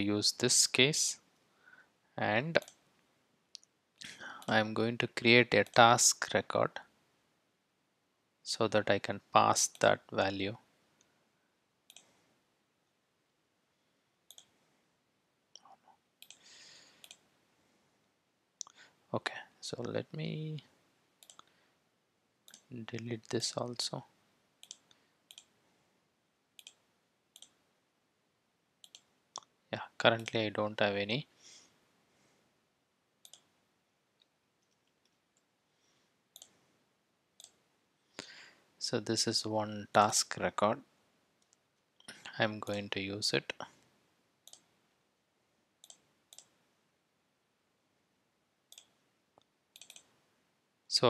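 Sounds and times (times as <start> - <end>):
computer mouse clicks: 2.6 - 2.8, 11.9 - 12.1, 14.3 - 14.5, 15.6 - 16.4, 17.0 - 17.3, 21.2 - 21.5, 24.6 - 25.6, 26.6 - 26.8, 27.4 - 27.6, 28.8 - 29.5, 33.2 - 33.6, 36.3 - 36.6, 37.4 - 37.6, 44.4 - 44.7, 45.8 - 46.6, 48.7 - 50.2.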